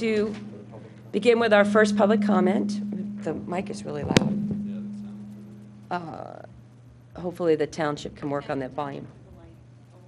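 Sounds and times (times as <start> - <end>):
low hum from pa system: 0.0 - 10.0.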